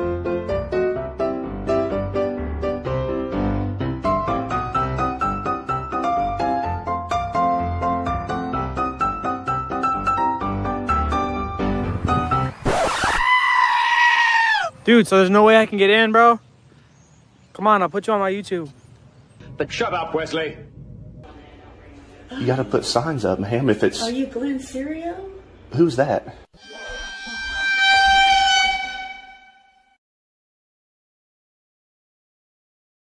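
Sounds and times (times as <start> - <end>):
piano music: 0.0 - 12.6, 26.6 - 30.0
high-pitched scream: 12.7 - 14.7, 26.6 - 30.0
long high horn-like note: 26.6 - 30.0.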